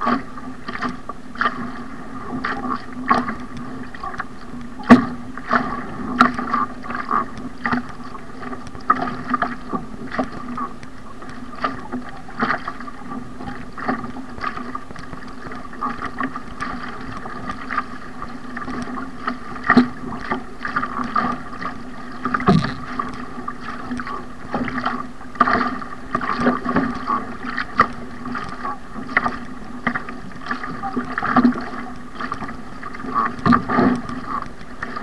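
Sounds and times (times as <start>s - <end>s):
paddle blades splashing: 0.0s - 35.0s
water washing along hull: 0.0s - 35.0s.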